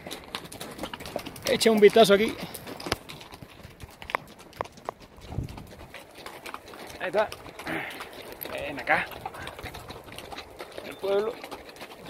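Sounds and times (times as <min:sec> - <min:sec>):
horse hooves on stony trail: 0:00.0 - 0:12.0.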